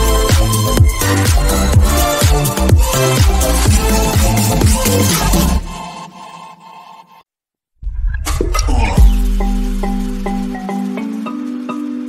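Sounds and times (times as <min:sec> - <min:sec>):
dance music: 0:00.0 - 0:06.6, 0:08.4 - 0:11.1
music track: 0:07.9 - 0:12.0.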